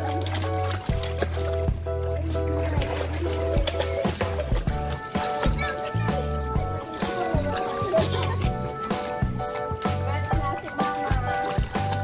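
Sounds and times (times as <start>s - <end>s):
background music with light beat: 0.0s - 12.0s.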